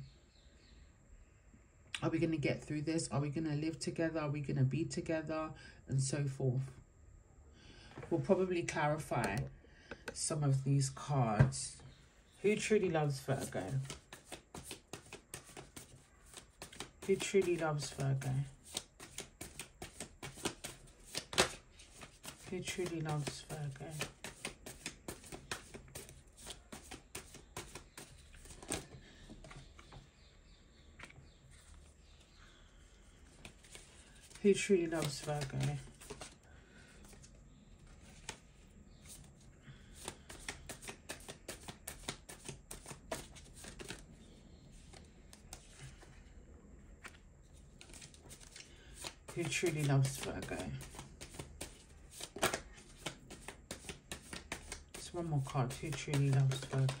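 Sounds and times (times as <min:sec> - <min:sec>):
cards being shuffled: 0:12.6 - 0:30.0, 0:33.3 - 0:36.4, 0:37.0 - 0:39.3, 0:39.9 - 0:44.0, 0:44.8 - 0:46.1, 0:47.0 - 0:57.0.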